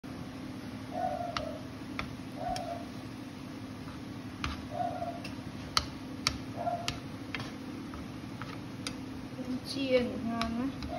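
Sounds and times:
steady low hum: 0:00.1 - 0:10.9
chopsticks tapping a pan: 0:05.2 - 0:09.1, 0:10.0 - 0:10.9.

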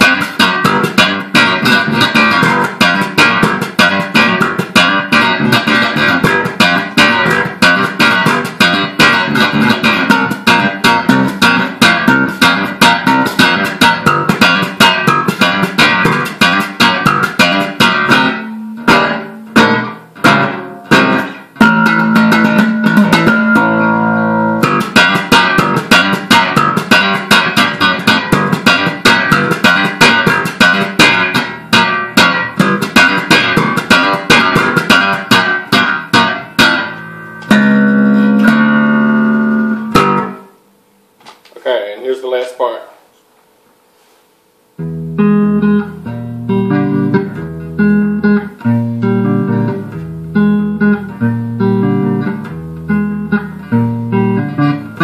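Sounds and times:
electric bass guitar plucking: 0:00.0 - 0:40.7, 0:44.7 - 0:55.0.

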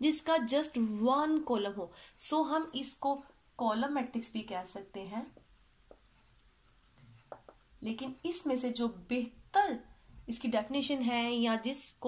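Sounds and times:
marker writing on whiteboard: 0:05.0 - 0:08.8.

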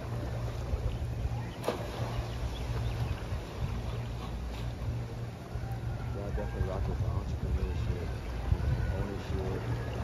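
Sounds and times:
small waves lapping: 0:00.0 - 0:10.0
wind rumble: 0:00.0 - 0:10.0.

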